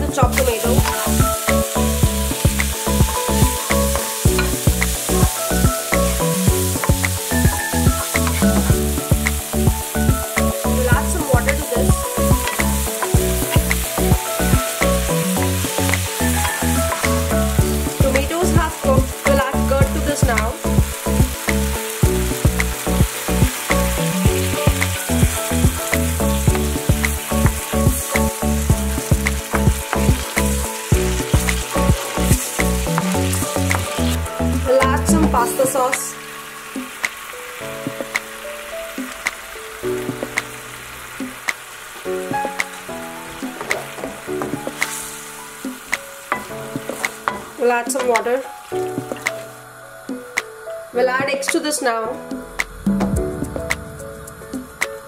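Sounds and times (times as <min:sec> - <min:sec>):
background music with beat: 0:00.0 - 0:36.2, 0:36.8 - 0:38.4, 0:39.0 - 0:40.6, 0:41.2 - 0:49.5, 0:52.2 - 0:55.0
vegetables sizzling in oil: 0:00.0 - 0:49.6
wooden spatula stirring: 0:43.3 - 0:48.3.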